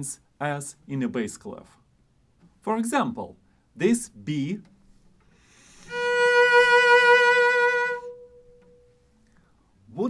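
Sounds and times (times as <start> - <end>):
cello sustained note with vibrato: 5.5 - 9.1.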